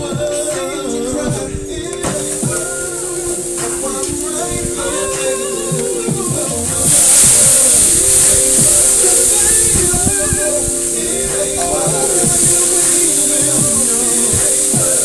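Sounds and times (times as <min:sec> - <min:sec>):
music: 0:00.0 - 0:15.0
water hissing on hot grill: 0:02.2 - 0:15.0.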